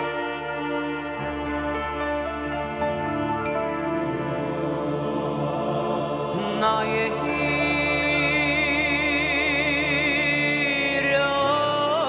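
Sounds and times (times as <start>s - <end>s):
high melody with vibrato: 0.0s - 10.6s
orchestra playing sustained chords: 0.0s - 12.0s.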